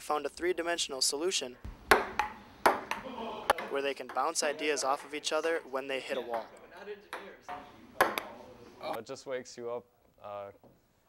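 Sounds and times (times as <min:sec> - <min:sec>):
table tennis ball pocks: 0:01.6 - 0:04.4, 0:08.0 - 0:08.4.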